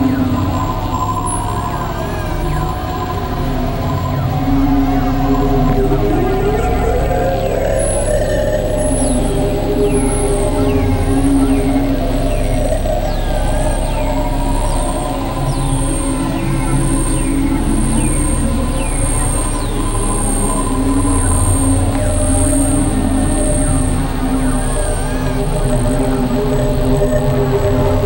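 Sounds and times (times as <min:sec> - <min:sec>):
synthesizer drone: 0:00.0 - 0:28.0.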